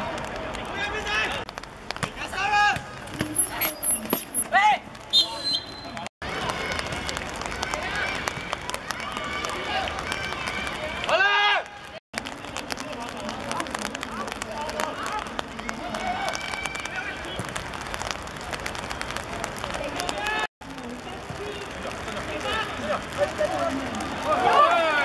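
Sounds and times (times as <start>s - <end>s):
players shouting and calling: 0.0s - 25.0s
loud yell: 24.2s - 25.0s.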